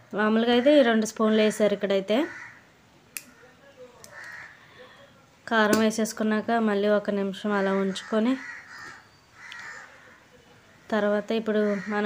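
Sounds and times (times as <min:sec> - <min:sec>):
crow cawing faintly: 0:02.2 - 0:04.9, 0:07.6 - 0:12.0.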